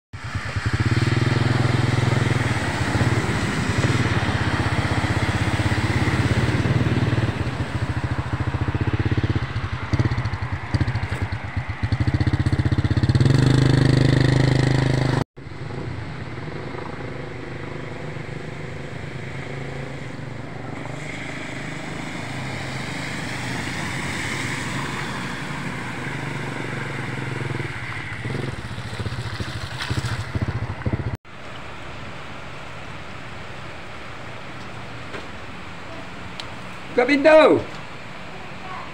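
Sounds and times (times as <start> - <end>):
tyres on wet road: 0.1 - 38.9
vehicle engines rumbling: 0.2 - 38.9.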